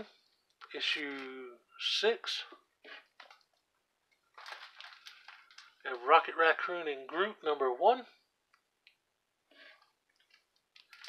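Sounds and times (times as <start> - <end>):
plastic bag crinkling: 3.0 - 5.8, 10.1 - 11.0.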